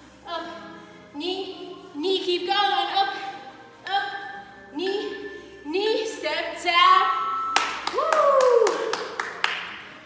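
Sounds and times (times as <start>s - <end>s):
background music: 0.0s - 10.0s
sharp hand claps: 7.6s - 9.8s.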